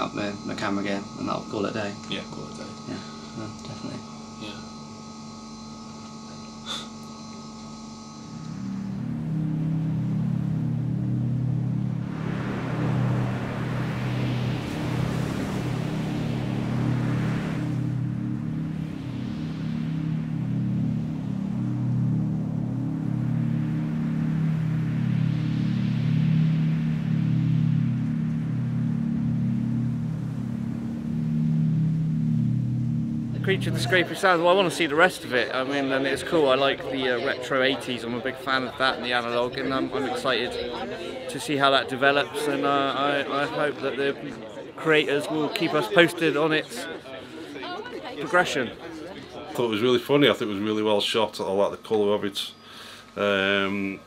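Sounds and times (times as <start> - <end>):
droning film score: 0.0 - 54.0
rushing noise swells: 8.1 - 43.9.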